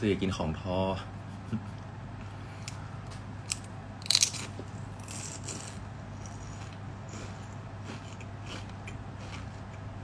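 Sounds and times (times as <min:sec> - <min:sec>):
chewing crispy fried food: 0:03.5 - 0:10.0.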